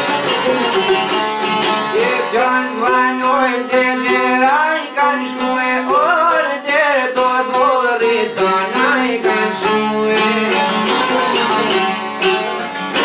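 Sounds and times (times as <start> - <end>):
plucked lutes folk rhythm: 0.0 - 13.0
man singing: 1.9 - 12.0.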